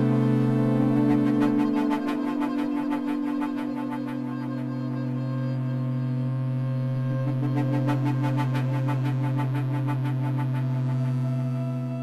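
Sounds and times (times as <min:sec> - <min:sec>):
electric viola drone: 0:00.0 - 0:12.0.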